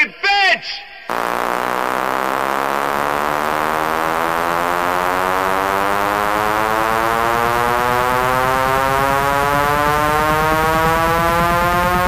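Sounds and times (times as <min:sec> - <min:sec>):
rapid low pulsing beat: 0:01.1 - 0:12.0
rising synthesizer chord: 0:01.1 - 0:12.0.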